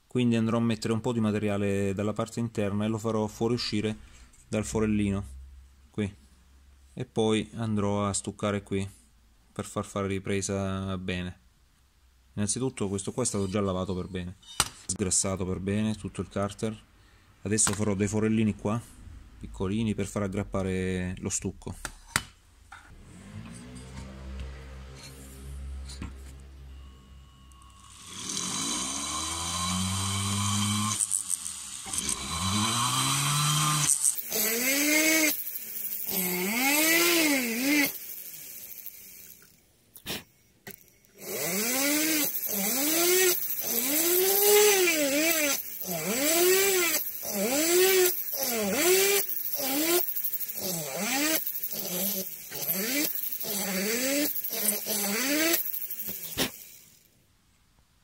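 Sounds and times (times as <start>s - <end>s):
rotary tool drilling into metal: 27.6s - 57.0s.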